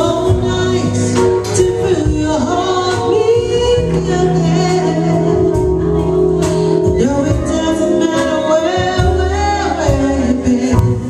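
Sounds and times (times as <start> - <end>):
small jazz band playing: 0.0 - 11.0
steady bass line: 0.0 - 11.0
woman singing: 0.0 - 11.0.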